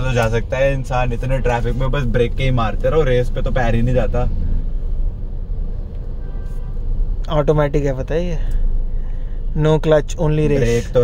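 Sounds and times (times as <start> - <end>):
diesel car engine rumble: 0.0 - 11.0
road noise: 0.0 - 11.0.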